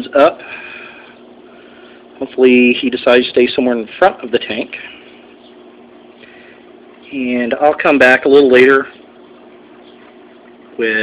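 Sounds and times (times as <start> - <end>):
aquarium equipment humming: 0.0 - 11.0.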